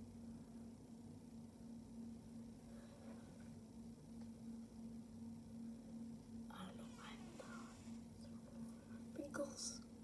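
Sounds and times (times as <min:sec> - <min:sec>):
steady low hum: 0:00.0 - 0:10.0
faint whispered speech: 0:06.5 - 0:08.4.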